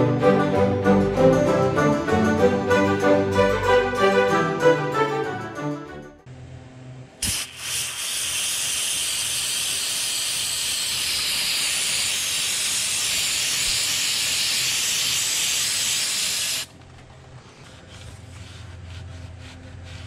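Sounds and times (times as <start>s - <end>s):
aerosol can spraying: 7.2s - 16.7s.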